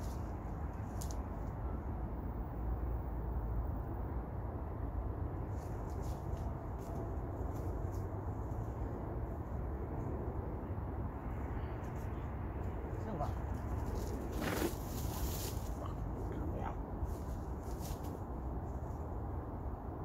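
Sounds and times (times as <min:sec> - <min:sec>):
footsteps crunching through leaves: 0:13.8 - 0:16.1.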